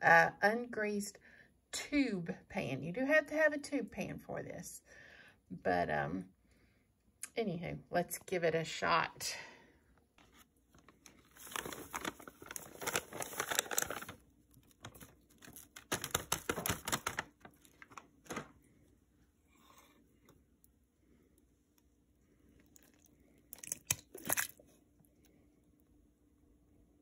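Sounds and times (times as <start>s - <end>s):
plastic bag crinkling: 10.7s - 18.6s, 22.7s - 24.8s.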